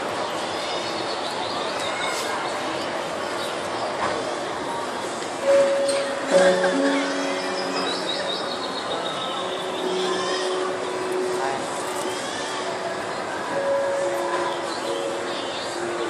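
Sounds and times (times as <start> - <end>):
indistinct voices: 1.8 - 16.0.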